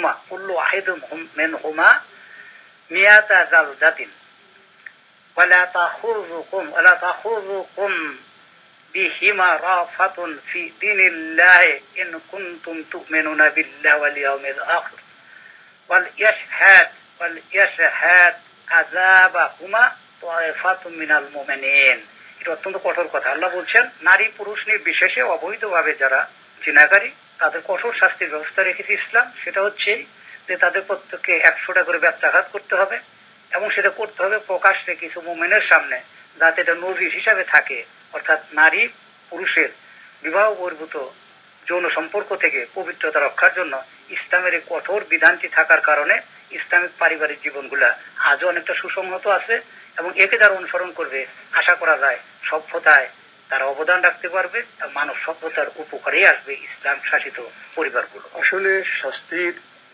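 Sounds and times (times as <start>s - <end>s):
man speaking: 0.0s - 2.1s, 9.0s - 15.0s, 15.9s - 41.1s, 41.7s - 59.6s.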